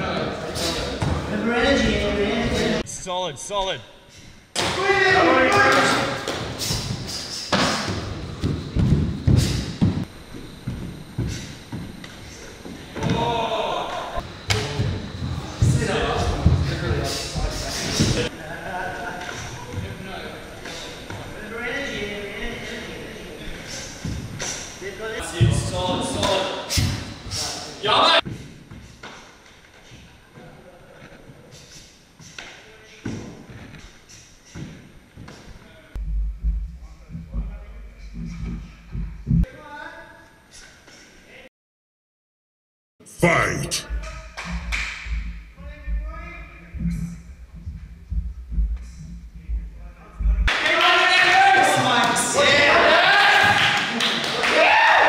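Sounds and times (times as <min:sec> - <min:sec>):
people shouting: 0:04.6 - 0:06.3, 0:50.6 - 0:53.8, 0:54.4 - 0:55.0.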